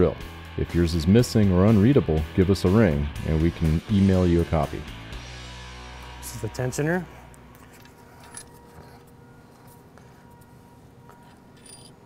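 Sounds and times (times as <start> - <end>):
metal clinking: 7.8 - 9.1, 10.3 - 12.0.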